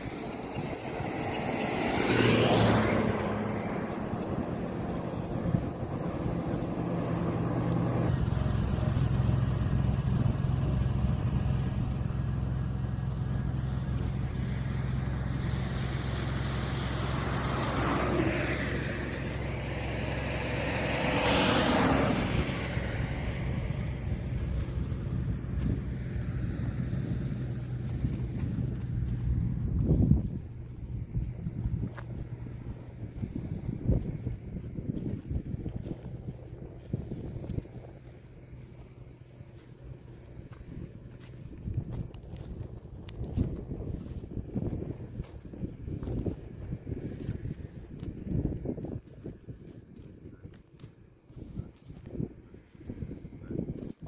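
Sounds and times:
vehicle engine humming: 0.0 - 54.0
vehicle passing: 0.0 - 54.0.

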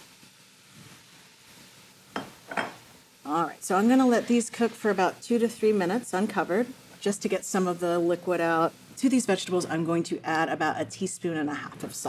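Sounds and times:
faint sizzle in hot oil: 0.0 - 12.0.

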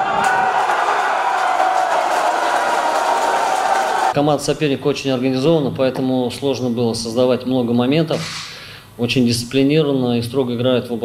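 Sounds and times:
stadium crowd cheering: 0.0 - 4.2.

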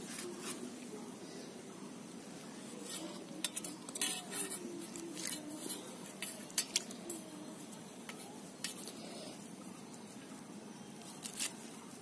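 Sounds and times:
fingers clinking metal bowl: 3.0 - 7.3.

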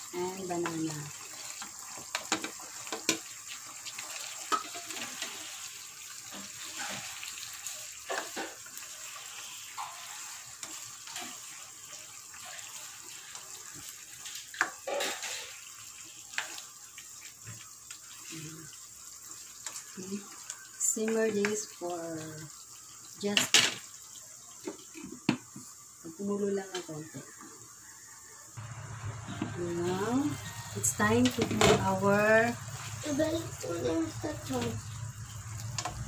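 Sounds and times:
bubbling sauce hissing: 0.0 - 36.0.

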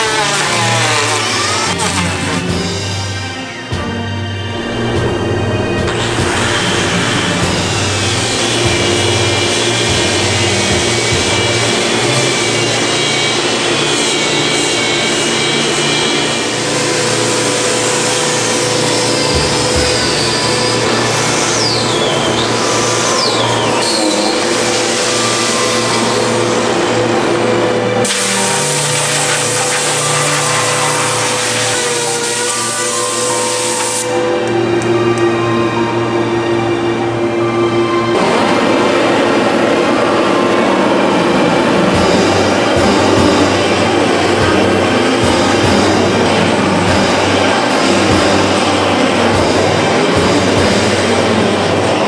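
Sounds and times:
electric disc sander on wood: 0.0 - 2.9, 5.9 - 34.2
background music: 0.0 - 52.0.

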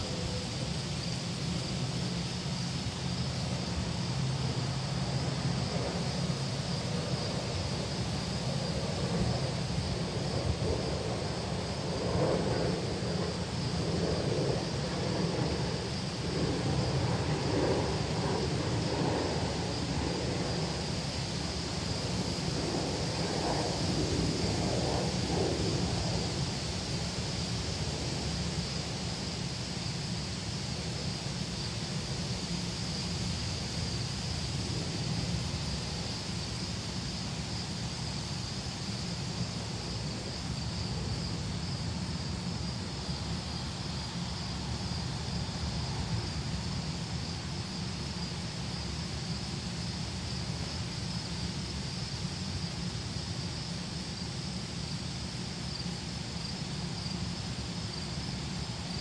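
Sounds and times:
constant high hiss: 0.0 - 59.0
wind rumble on microphone: 0.0 - 59.0.

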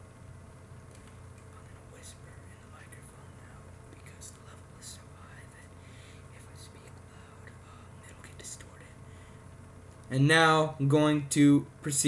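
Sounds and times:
low hum: 0.0 - 12.0
man whispering into a microphone: 1.5 - 9.0.

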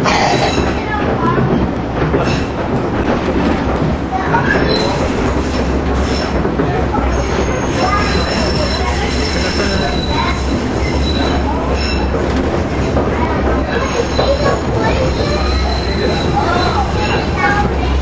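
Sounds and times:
rumble of trolley wheels and motors: 0.0 - 18.0
high-pitched wheel squeal: 7.2 - 12.1.

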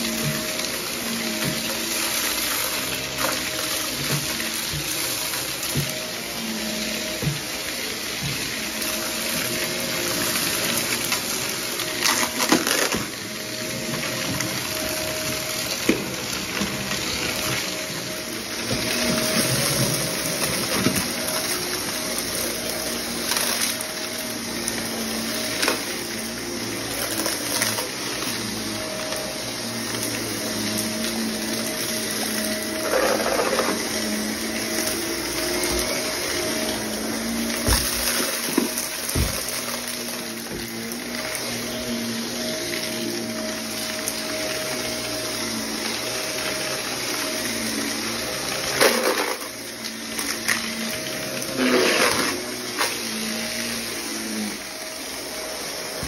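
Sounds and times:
vacuum cleaner running on carpet: 0.0 - 56.0
debris clicking in vacuum: 48.6 - 53.0.

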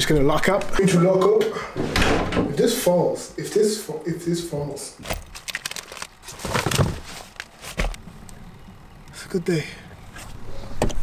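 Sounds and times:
things rustling and knocking on car seat: 6.3 - 8.0.

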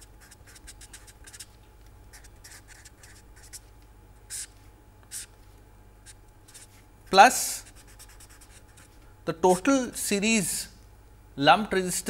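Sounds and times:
marker writing on paper: 0.0 - 1.5, 2.1 - 3.6, 4.3 - 4.5, 5.1 - 5.3, 6.5 - 6.7, 7.5 - 8.9.

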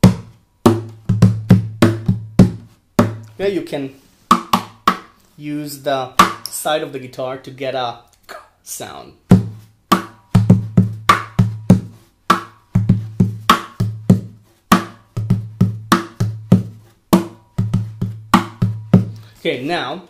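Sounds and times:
hand drumming on guitar body: 0.0 - 3.3, 4.3 - 5.1, 9.3 - 19.2.

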